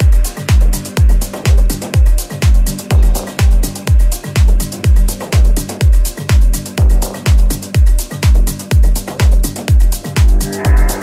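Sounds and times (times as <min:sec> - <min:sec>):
house music: 0:00.0 - 0:11.0
kick drum: 0:00.0 - 0:11.0
low synth note: 0:10.1 - 0:11.0.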